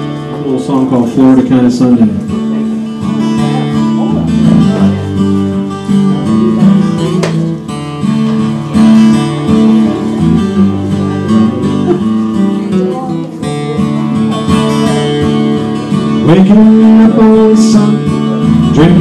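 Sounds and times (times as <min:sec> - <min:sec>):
acoustic guitar strumming: 0:00.0 - 0:19.0.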